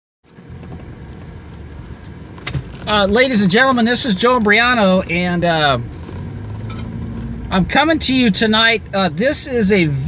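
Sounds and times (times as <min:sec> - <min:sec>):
vehicle interior rumble: 0:00.2 - 0:10.0.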